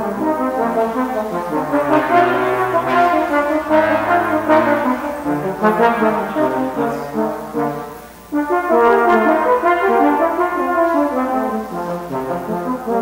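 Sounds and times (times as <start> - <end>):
brass duet: 0.0 - 13.0.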